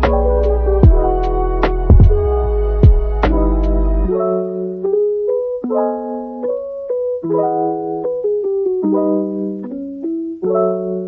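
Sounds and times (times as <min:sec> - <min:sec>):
piano music: 0:00.0 - 0:11.0.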